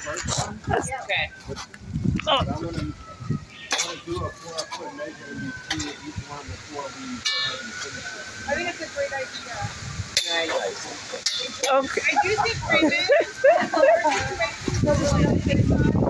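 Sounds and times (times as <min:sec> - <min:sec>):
low talking: 0:00.0 - 0:16.0.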